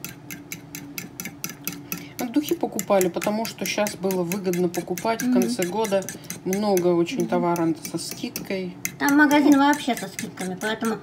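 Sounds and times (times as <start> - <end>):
fork beating eggs in bowl: 0.0 - 11.0.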